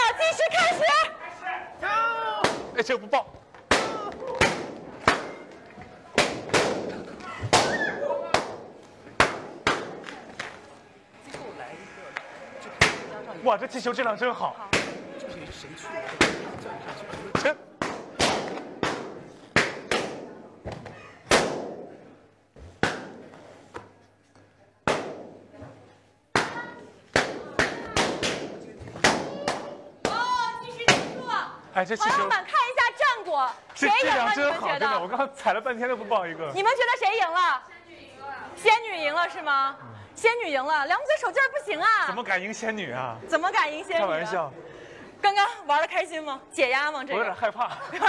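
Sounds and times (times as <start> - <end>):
balloons bursting: 2.4 - 23.7, 24.8 - 25.6, 26.3 - 31.3.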